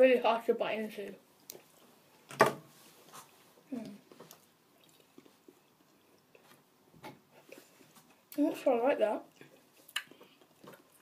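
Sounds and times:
mouth clicks chewing: 0:09.3 - 0:11.0.

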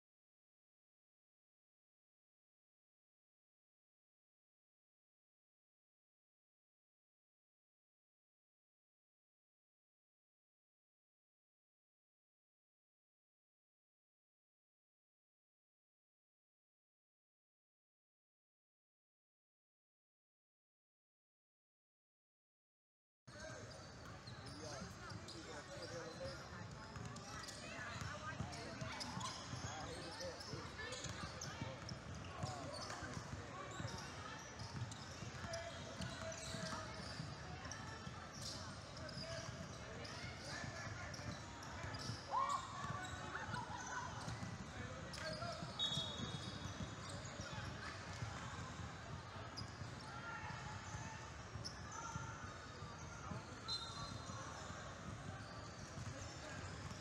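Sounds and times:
voices in a gym: 0:23.3 - 0:57.0.

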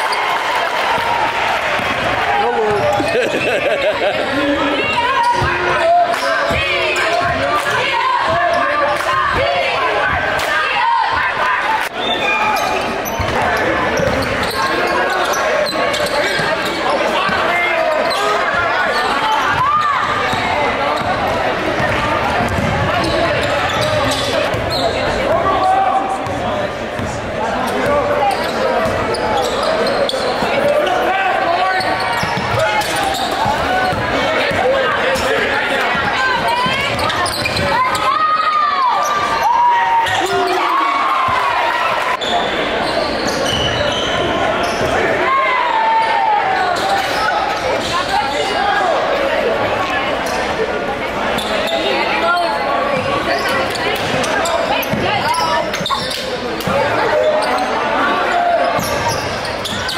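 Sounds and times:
crowd chatter and shouting: 0:00.0 - 0:59.9.

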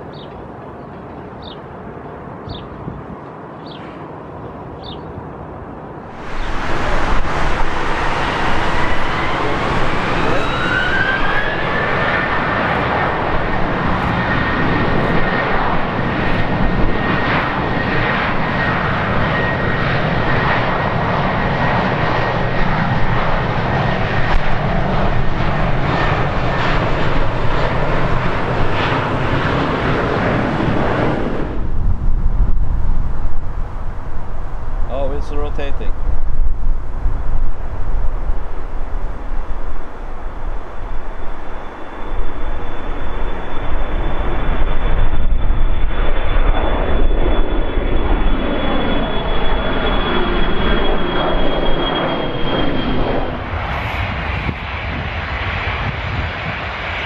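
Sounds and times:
jet engines roaring and whining: 0:00.0 - 0:57.0.

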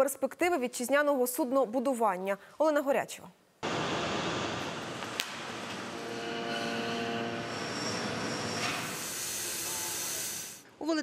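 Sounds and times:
machine hum: 0:03.6 - 0:10.2
gas cutting torch hissing: 0:06.6 - 0:10.6.

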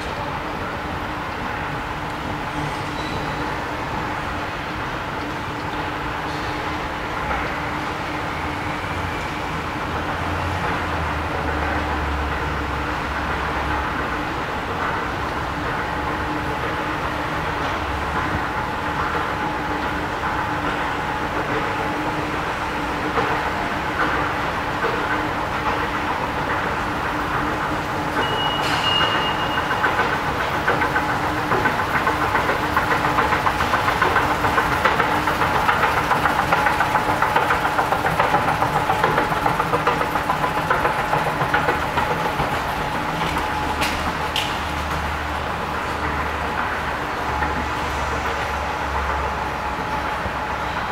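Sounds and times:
escalator machinery humming: 0:00.0 - 0:50.9
short high beep: 0:28.2 - 0:29.7.

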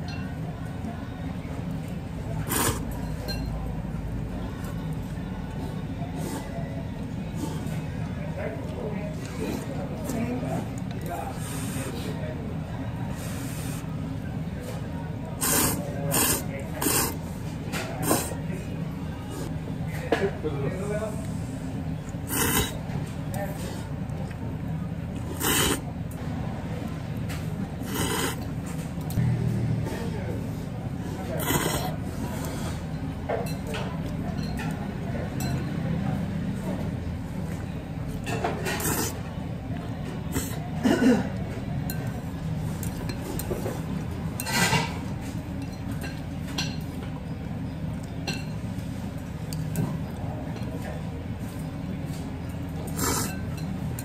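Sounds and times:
noodles being slurped: 0:02.4 - 0:02.8, 0:15.4 - 0:17.2, 0:22.2 - 0:22.8, 0:25.2 - 0:25.8, 0:27.8 - 0:28.4, 0:31.4 - 0:31.9, 0:52.9 - 0:53.4
eating noises: 0:02.4 - 0:02.9, 0:15.4 - 0:17.2, 0:18.0 - 0:18.4, 0:22.1 - 0:22.8, 0:25.1 - 0:25.9, 0:27.8 - 0:28.5, 0:31.2 - 0:32.6, 0:52.8 - 0:53.5.

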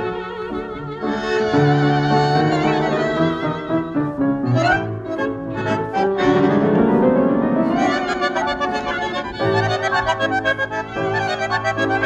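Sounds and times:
tango orchestra with violins and piano: 0:00.0 - 0:12.0.

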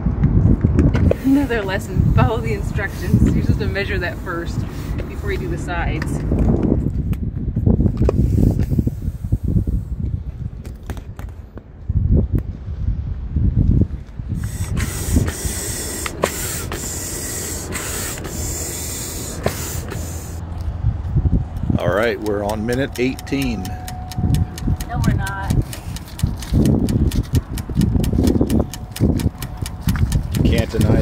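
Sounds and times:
air hissing: 0:01.0 - 0:05.9, 0:14.4 - 0:20.4
kayak rumbling and rubbing: 0:14.3 - 0:31.0
sharp clicks: 0:21.5 - 0:31.0.

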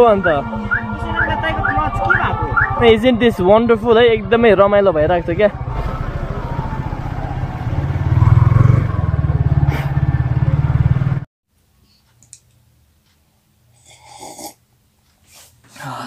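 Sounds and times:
motorcycle engine running: 0:00.3 - 0:11.3.

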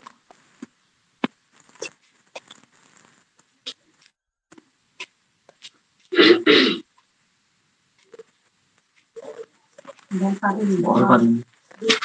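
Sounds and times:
man clearing his throat: 0:06.2 - 0:06.8.

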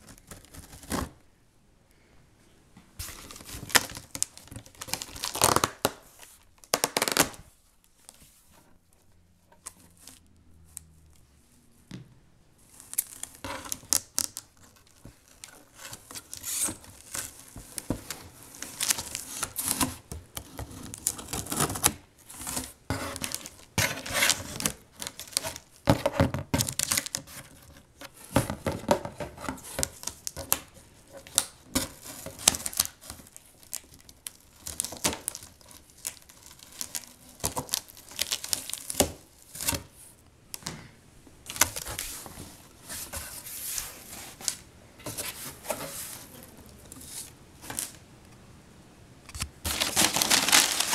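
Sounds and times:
packing tape tearing: 0:03.1 - 0:06.0, 0:06.6 - 0:07.4, 0:29.5 - 0:39.9, 0:49.4 - 0:50.9
cardboard rustling and scraping: 0:12.7 - 0:34.0, 0:41.4 - 0:48.0, 0:49.4 - 0:50.9.

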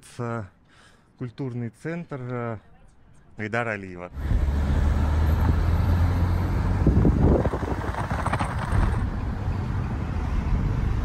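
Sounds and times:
car road and engine rumble: 0:04.1 - 0:11.0.

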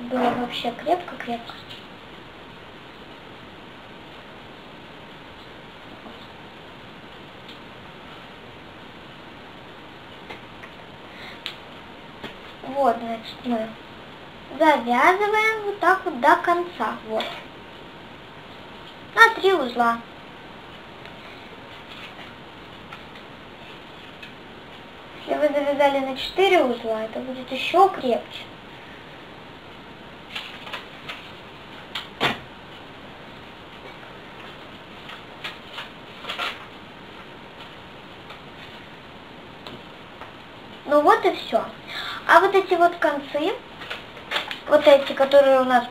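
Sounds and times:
steady background hiss: 0:00.0 - 0:45.9.

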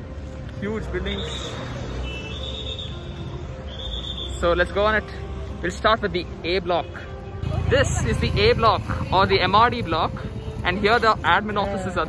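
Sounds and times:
distant traffic: 0:00.0 - 0:12.0
high whistling tone: 0:01.0 - 0:04.8.

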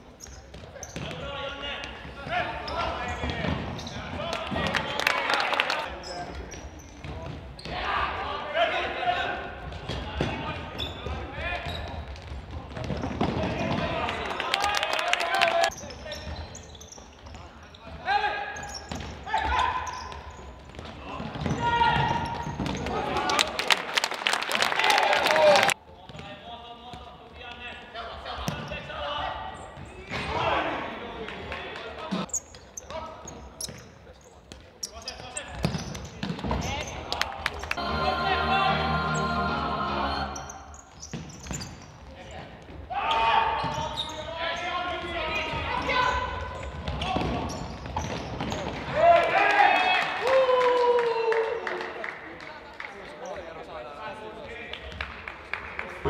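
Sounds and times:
players calling out: 0:37.6 - 0:40.8.

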